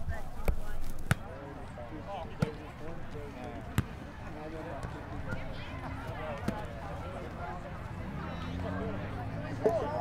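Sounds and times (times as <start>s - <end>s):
background voices chattering: 0.0s - 10.0s.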